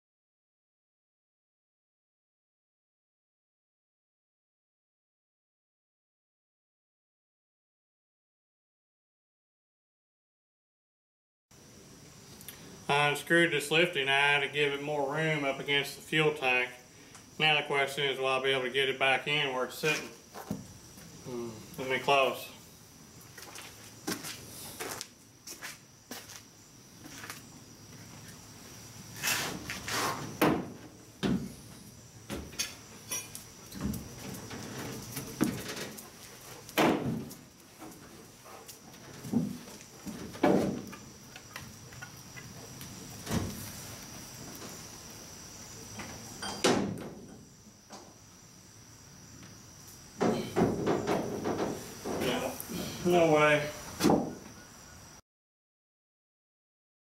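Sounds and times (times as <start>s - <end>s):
night insects chirring: 11.5s - 55.2s
footfalls in truck bed: 36.7s - 38.0s, 39.0s - 40.9s.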